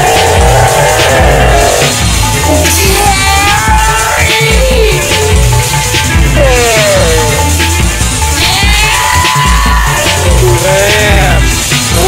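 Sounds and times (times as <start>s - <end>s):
electronic music with pulsing bass: 0.0s - 12.0s.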